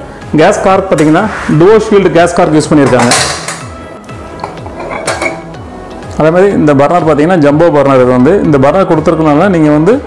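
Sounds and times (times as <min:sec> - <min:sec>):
background music with repeating beat: 0:02.2 - 0:10.0.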